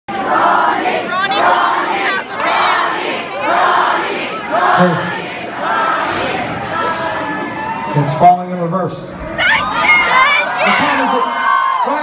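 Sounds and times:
concert crowd shouting and cheering: 0:00.1 - 0:12.0.

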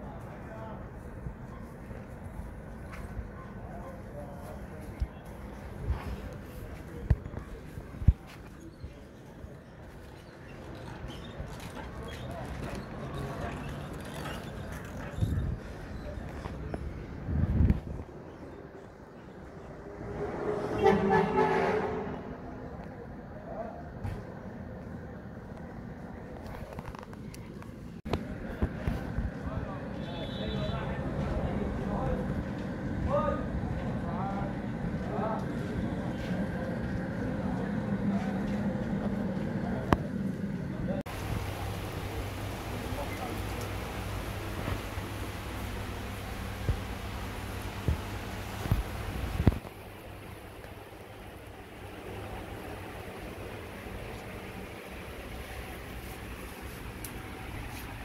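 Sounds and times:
traffic noise: 0:00.0 - 0:58.0
motor vehicle passing: 0:19.7 - 0:22.6.

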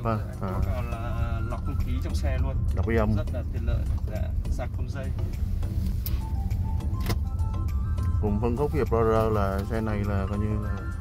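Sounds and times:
faint music: 0:00.0 - 0:11.0
road and engine rumble in car: 0:00.0 - 0:11.0.

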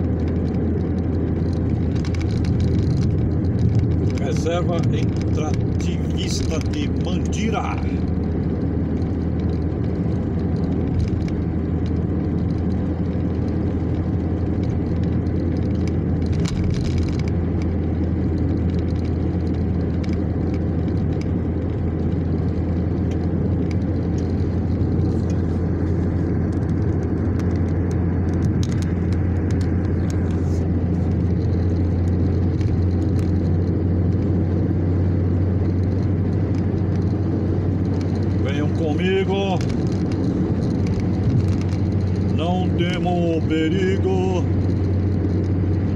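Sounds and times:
car road noise drone: 0:00.0 - 0:45.9.

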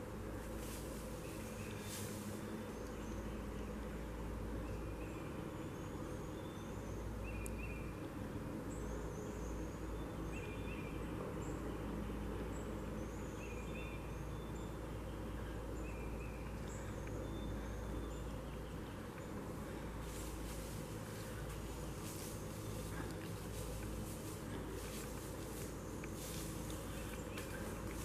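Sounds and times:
woodland background noise: 0:00.0 - 0:28.0.

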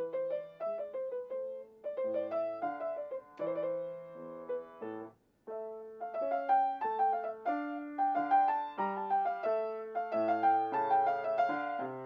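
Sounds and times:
solo grand piano: 0:00.0 - 0:12.0.

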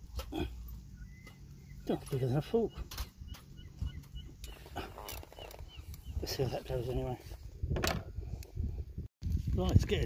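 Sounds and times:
wind buffeting microphone: 0:02.7 - 0:10.0.

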